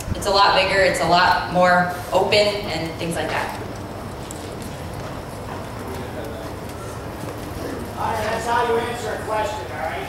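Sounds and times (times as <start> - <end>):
audience murmur: 2.9 - 10.0.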